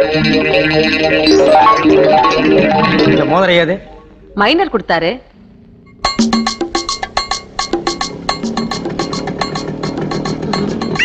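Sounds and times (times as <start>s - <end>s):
rhythmic percussion music: 0.0s - 4.7s, 6.0s - 11.0s.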